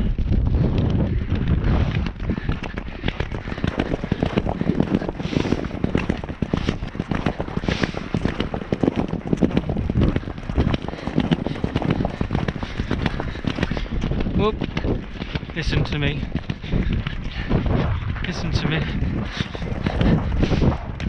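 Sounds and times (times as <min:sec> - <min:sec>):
horse galloping on turf: 0:00.0 - 0:21.0.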